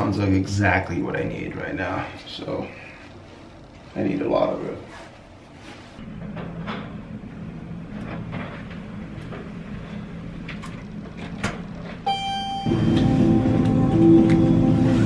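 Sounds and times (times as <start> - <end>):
loud music: 12.6 - 15.0.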